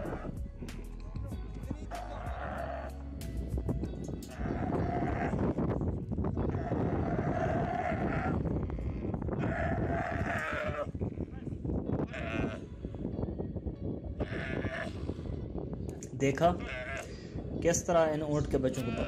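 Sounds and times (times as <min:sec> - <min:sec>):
young camel bawling: 0:00.0 - 0:00.4, 0:01.9 - 0:03.1, 0:04.3 - 0:05.6, 0:06.4 - 0:12.7, 0:14.2 - 0:15.4, 0:16.6 - 0:17.1.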